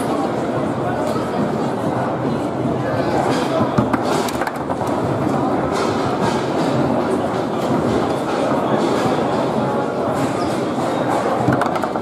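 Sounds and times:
murmur of crowd: 0.0 - 12.0
foosball ball and rods clacking: 3.3 - 9.3, 10.1 - 12.0.

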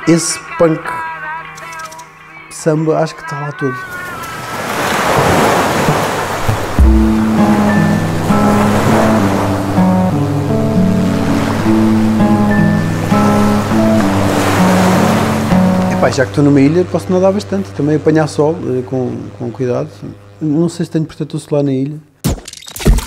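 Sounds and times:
waves washing in and out: 4.0 - 16.6
stepped melody over low drone: 5.9 - 21.0.

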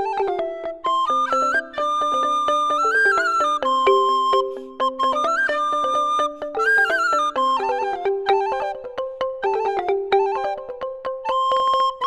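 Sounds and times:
quick melody of struck notes: 0.0 - 12.0.

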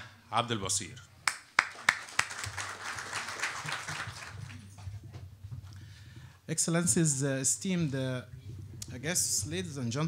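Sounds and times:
sharp hand claps: 1.2 - 4.6
audience clapping: 1.2 - 4.8.

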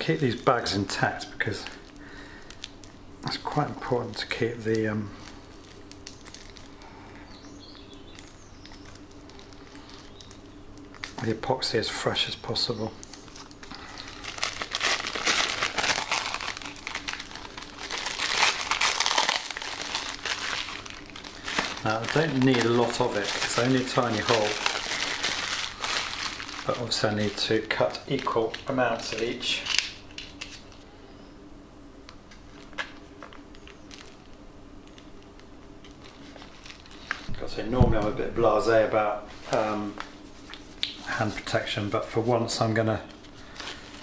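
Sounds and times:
faint low hum: 0.0 - 44.0
plastic bags crinkling: 0.9 - 7.2, 7.8 - 11.4, 13.0 - 30.9, 32.3 - 38.2, 42.5 - 44.0.

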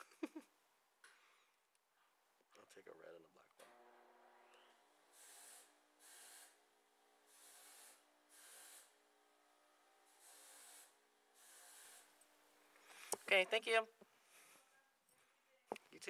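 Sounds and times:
soft hissy breaths: 1.0 - 2.5, 10.2 - 15.9.

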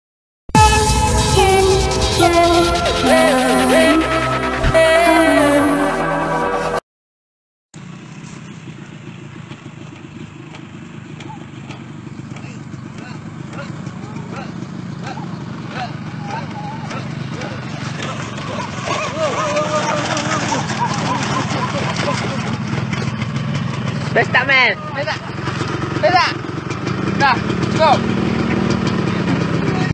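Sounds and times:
motorcycle engine at low revs: 7.8 - 29.9
voices talking: 11.2 - 22.9.

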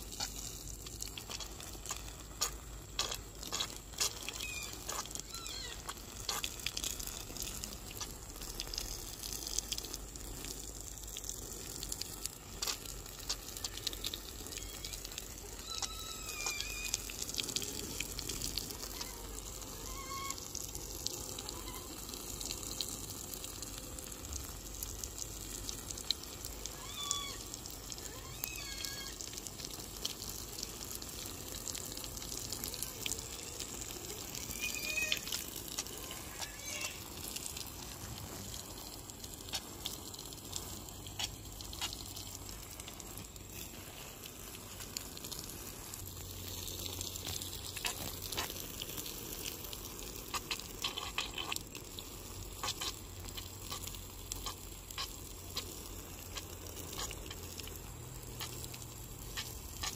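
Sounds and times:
water spraying from hose onto soil: 0.0 - 59.9.

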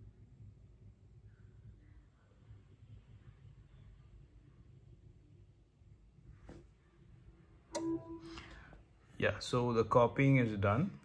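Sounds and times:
computer chime: 7.8 - 8.6.

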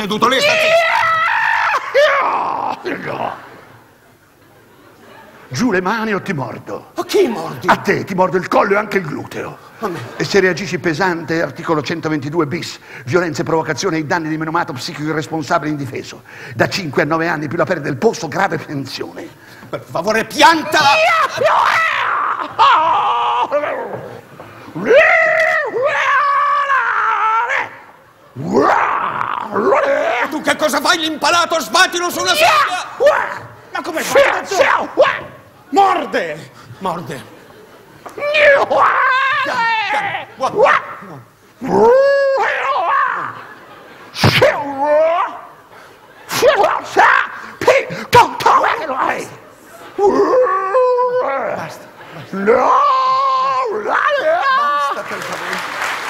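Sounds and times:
man howling like a dog: 20.8 - 24.0, 24.8 - 30.3, 38.2 - 43.4, 50.0 - 51.5
man imitating a dog: 38.2 - 43.4.

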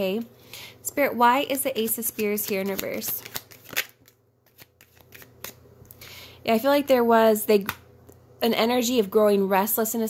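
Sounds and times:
cards being shuffled: 1.8 - 5.6.

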